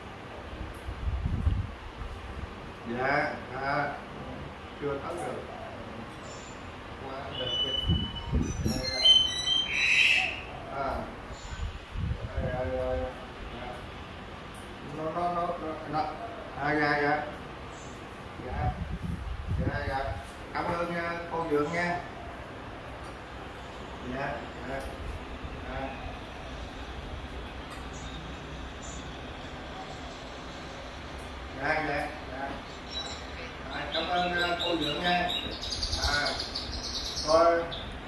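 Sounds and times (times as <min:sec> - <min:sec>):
bird whistles and chirps: 0:07.3 - 0:10.5
bird squawk: 0:07.3 - 0:10.6.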